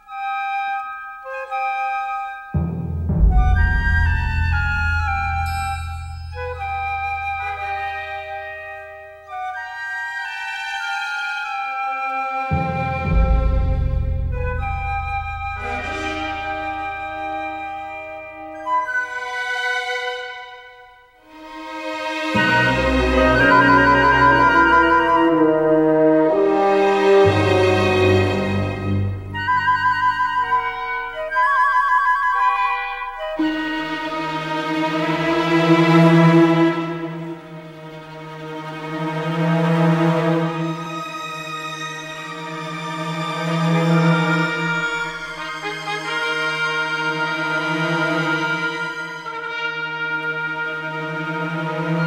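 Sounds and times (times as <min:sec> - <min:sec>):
woodwind notes with trills: 0:00.0 - 0:38.3, 0:40.1 - 0:52.0
orchestral music: 0:00.0 - 0:52.0
low orchestral chord: 0:12.5 - 0:18.9, 0:22.3 - 0:31.2.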